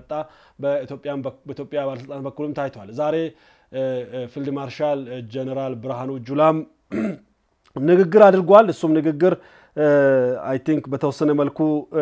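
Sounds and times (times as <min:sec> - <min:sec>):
man speaking: 0:00.0 - 0:07.1, 0:07.7 - 0:12.0.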